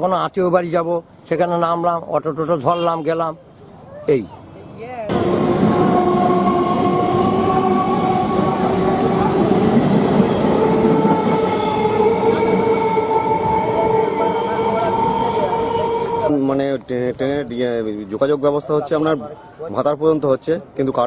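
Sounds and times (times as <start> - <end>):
train rumbling with whining tones: 4.8 - 17.5.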